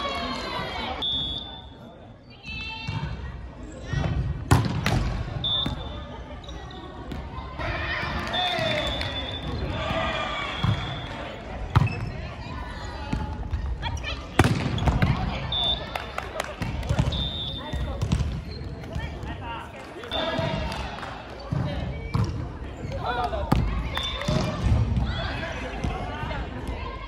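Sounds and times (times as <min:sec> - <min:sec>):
players calling out: 0:07.6 - 0:13.0, 0:15.0 - 0:22.1.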